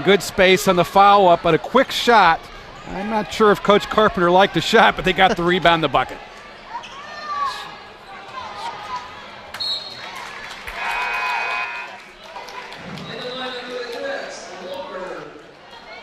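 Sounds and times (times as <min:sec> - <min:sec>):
crowd voices and shouts: 0:00.0 - 0:16.0.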